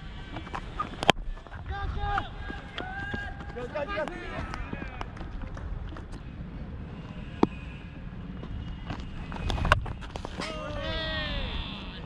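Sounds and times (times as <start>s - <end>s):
long drawn-out shout: 10.4s - 12.0s.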